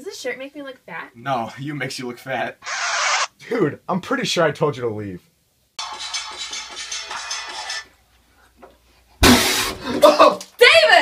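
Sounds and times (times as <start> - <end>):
mouthwash swishing in mouth: 2.6 - 3.3.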